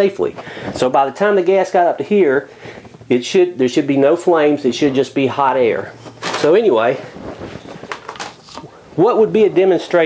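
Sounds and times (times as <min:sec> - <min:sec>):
plastic rubbing: 0:05.8 - 0:08.9.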